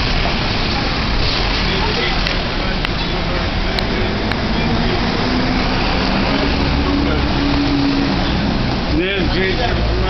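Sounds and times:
road noise: 0:00.0 - 0:10.0
vehicle engine hum: 0:00.0 - 0:10.0.

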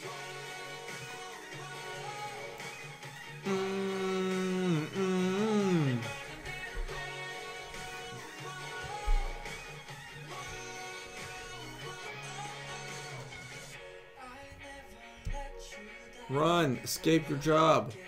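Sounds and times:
pop song with sung vocals: 0:00.0 - 0:18.0.

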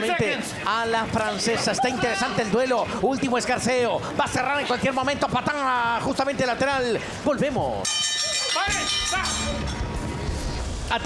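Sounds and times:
low rumbling whoosh: 0:09.6 - 0:11.0.

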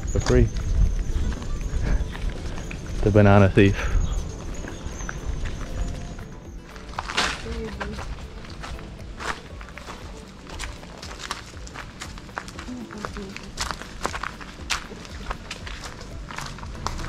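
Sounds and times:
background music: 0:00.0 - 0:17.0
footsteps on gravel: 0:00.0 - 0:17.0
footsteps on tiled porch: 0:00.0 - 0:17.0.

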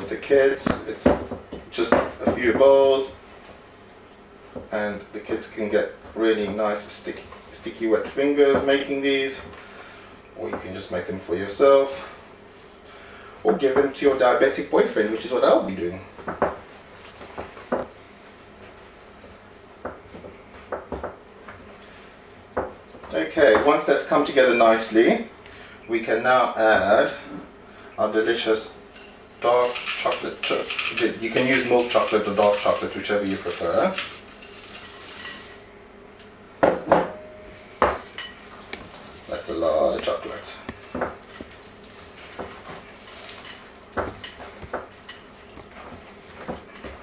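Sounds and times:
chocolate chips rattling into bowl: 0:29.6 - 0:35.5.

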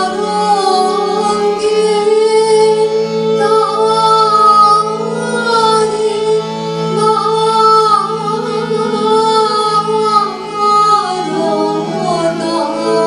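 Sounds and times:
harmonium drone: 0:00.0 - 0:13.0
keyboard: 0:00.0 - 0:13.0
violin: 0:00.0 - 0:13.0.

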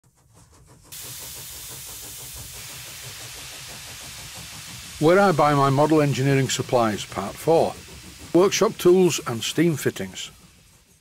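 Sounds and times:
steam hissing: 0:00.4 - 0:11.0.

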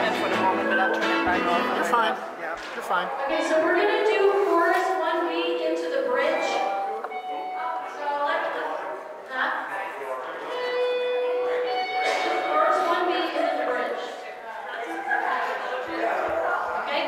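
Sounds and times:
musical accompaniment: 0:00.0 - 0:02.2, 0:06.1 - 0:08.0, 0:10.5 - 0:13.5.

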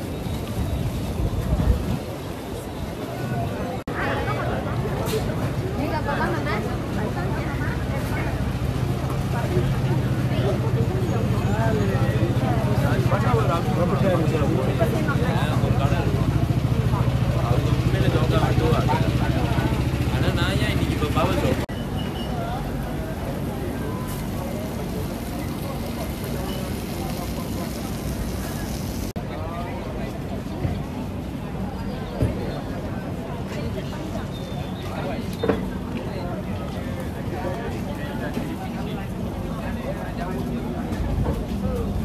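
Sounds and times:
low street rumble: 0:00.0 - 0:42.0
voices of passers-by: 0:00.0 - 0:42.0.

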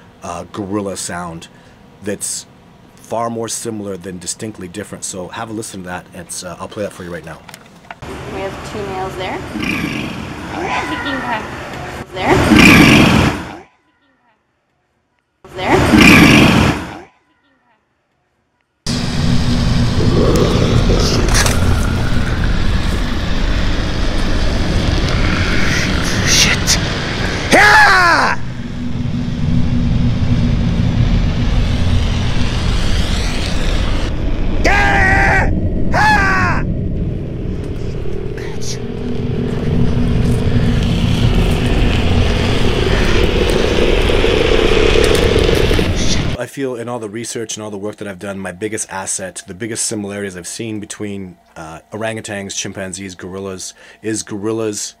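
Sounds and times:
loud vocal burst: 0:12.2 - 0:13.6, 0:15.6 - 0:17.0, 0:19.6 - 0:28.8, 0:32.1 - 0:36.8, 0:37.8 - 0:46.4
flare hissing: 0:18.9 - 0:46.4
low rumble: 0:18.9 - 0:46.4
short falling cry: 0:25.2 - 0:28.8, 0:34.5 - 0:36.9.

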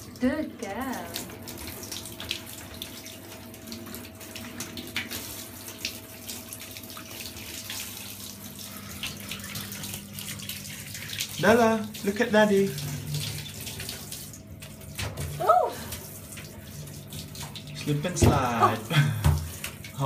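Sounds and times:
water spraying into bathtub: 0:00.0 - 0:20.0.

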